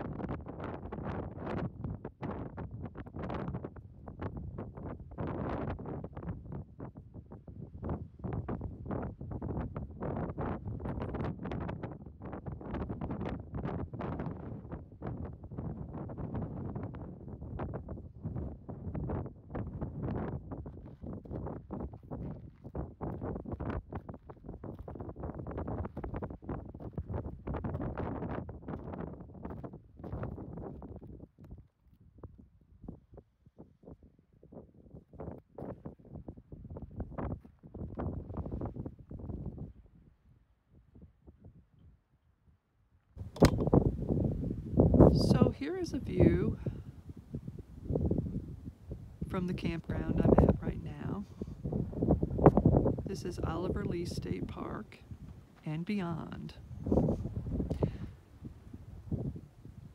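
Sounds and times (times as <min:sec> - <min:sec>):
wind buffeting microphone: 0:00.0 - 0:41.9, 0:43.2 - 0:55.6, 0:56.3 - 0:59.9.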